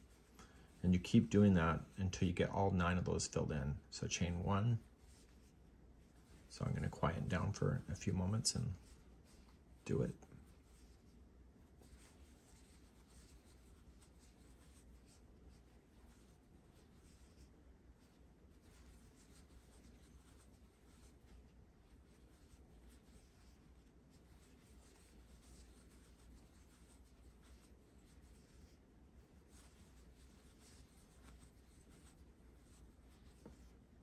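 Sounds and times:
low room hum: 0.0s - 34.0s
crochet hook rubbing yarn: 4.2s - 34.0s.

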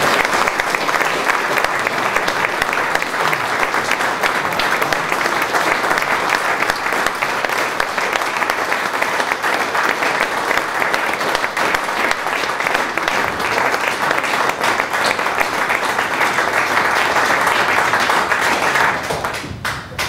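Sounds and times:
audience applause: 0.0s - 20.0s.

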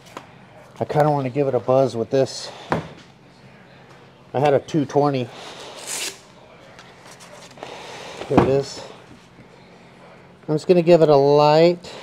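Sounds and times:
rustling and handling noises: 5.6s - 9.6s.

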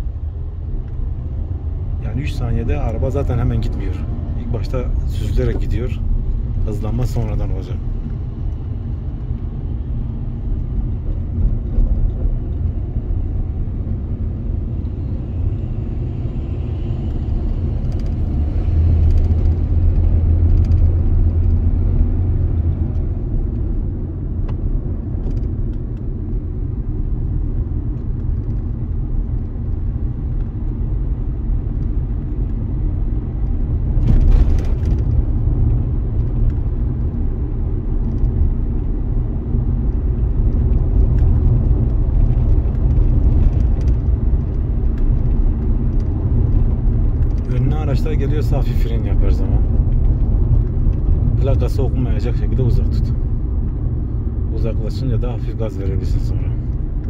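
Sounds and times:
car engine and tyres rumble: 0.0s - 57.0s.

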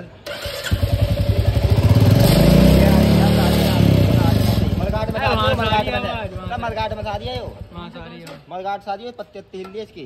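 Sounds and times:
motorcycle engine starting and running: 0.2s - 8.2s.

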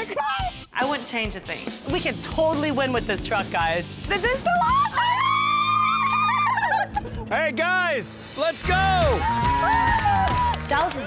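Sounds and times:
background music: 0.0s - 11.0s
woman squealing: 4.4s - 7.1s.

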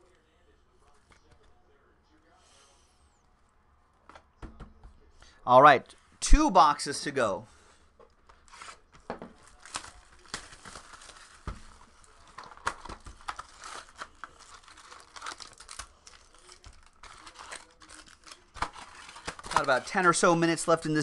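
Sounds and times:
shrink wrap tearing and crinkling: 8.3s - 20.8s
foil packs crackling: 8.4s - 21.0s.

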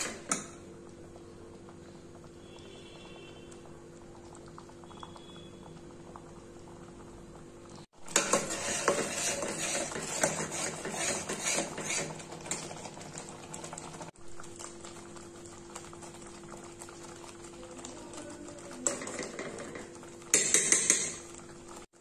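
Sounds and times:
sauce bubbling: 0.0s - 22.0s
spoon scraping a steel pan: 8.1s - 12.6s.

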